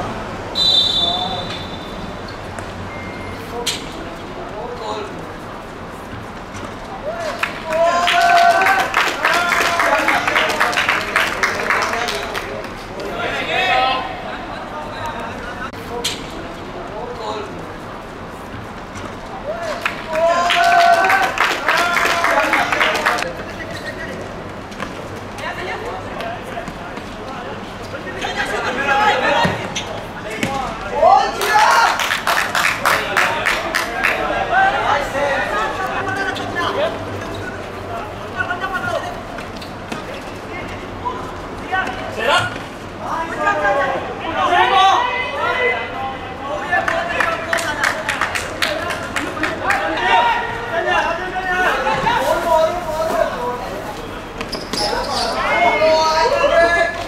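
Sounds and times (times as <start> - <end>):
players shouting: 6.9 - 15.8, 19.3 - 24.0, 27.5 - 39.4, 40.0 - 57.0
ball kicked and bouncing on concrete: 24.7 - 25.0, 30.3 - 30.8.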